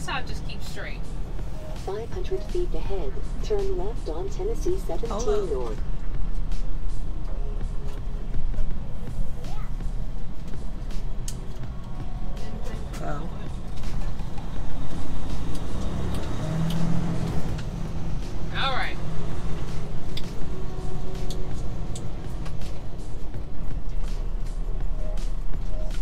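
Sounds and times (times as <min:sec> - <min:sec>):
diesel truck engine droning: 0:00.0 - 0:26.0.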